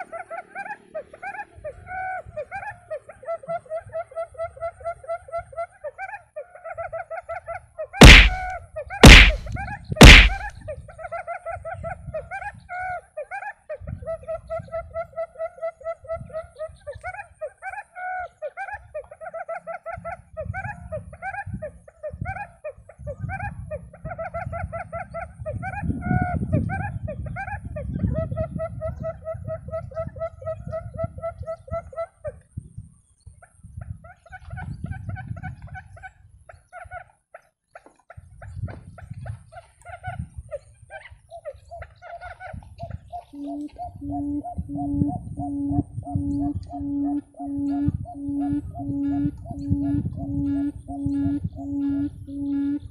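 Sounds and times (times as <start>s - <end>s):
quail calling in trilled phrases: 0.0s - 52.9s
low wind rumble on microphone: 1.5s - 5.6s, 8.3s - 13.0s, 13.7s - 17.4s, 19.9s - 36.9s, 38.2s - 52.9s.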